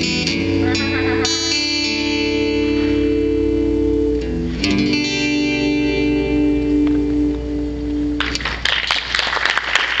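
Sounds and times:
acoustic guitar chord ringing: 0.0 - 8.6
audience applause: 8.2 - 10.0.

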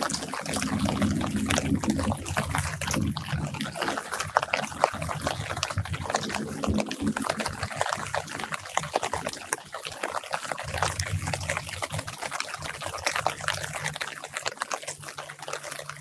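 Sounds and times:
low background rumble: 0.0 - 9.5
rain pattering on leaves: 0.0 - 16.0.

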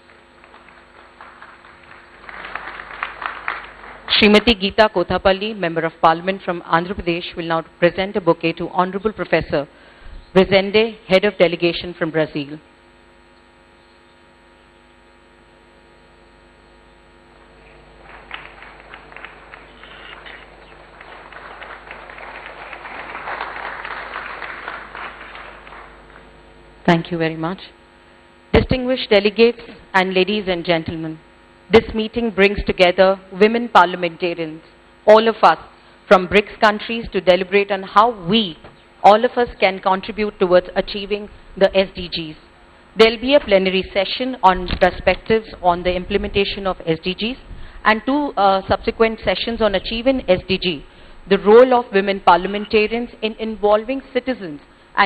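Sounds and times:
audience applause: 0.0 - 4.1, 17.6 - 26.3.

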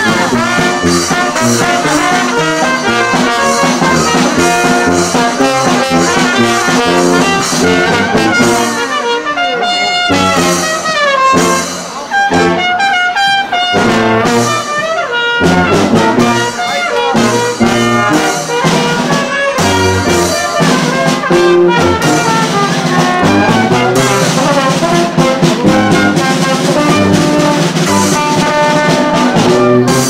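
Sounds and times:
brass band playing a carol: 0.0 - 30.0.

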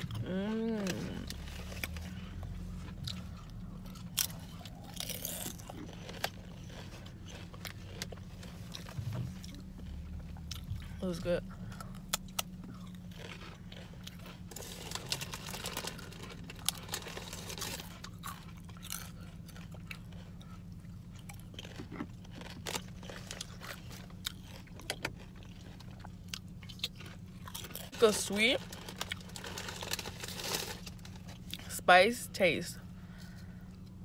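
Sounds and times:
person chewing crunchy chips: 0.0 - 31.8
steady low hum: 0.0 - 34.0.

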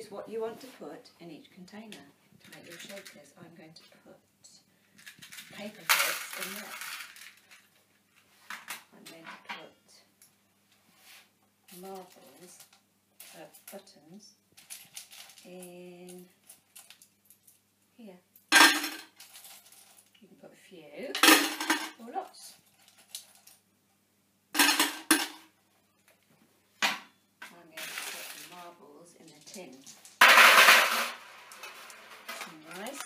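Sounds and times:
paper clips rattling: 5.1 - 7.4
paper clips clinking into pot: 5.5 - 7.2, 31.5 - 33.0.

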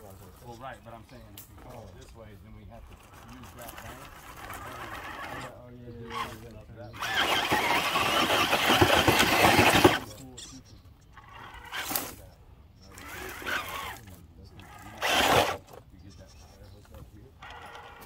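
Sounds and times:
tires grinding on rock: 1.6 - 10.4, 11.1 - 18.0
electric motor straining: 2.9 - 10.2, 11.2 - 12.2, 12.9 - 15.8, 17.4 - 18.0.

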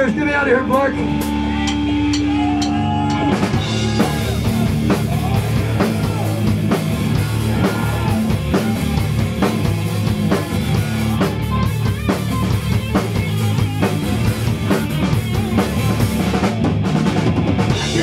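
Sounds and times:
bass guitar: 0.0 - 18.0
drum kit beat: 0.0 - 18.0
electric guitar: 0.0 - 18.0.

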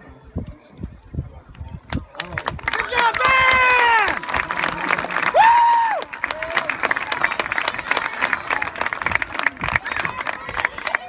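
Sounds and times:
crowd applauding and cheering: 1.9 - 11.0
person whooping: 5.3 - 6.0.

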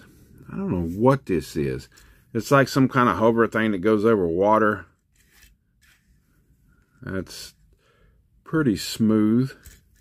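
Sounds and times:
toy rubbing across tabletop: 5.0 - 6.6.

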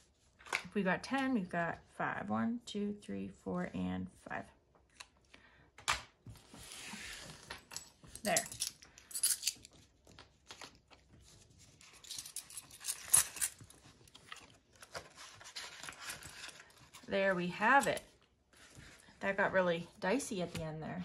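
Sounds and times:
coins clinking: 7.7 - 9.6, 12.0 - 13.6
plastic envelope rustling: 12.7 - 17.8.

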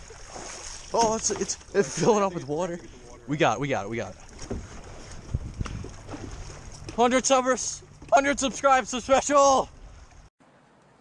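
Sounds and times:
paddle strokes in water: 0.0 - 3.2, 4.0 - 10.3
low thumps on canoe hull: 4.2 - 9.0.

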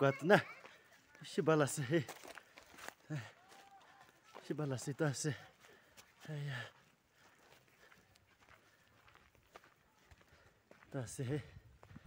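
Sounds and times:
faint footsteps: 0.0 - 12.0.

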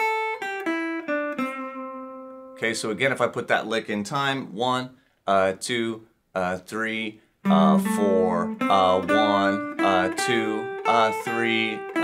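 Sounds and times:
electric guitar blues line: 0.0 - 3.0, 7.4 - 12.0.

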